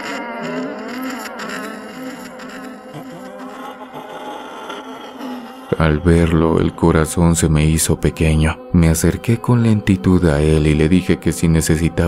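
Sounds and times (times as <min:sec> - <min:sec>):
dark ambient buzzing drone: 0:00.0 - 0:12.0.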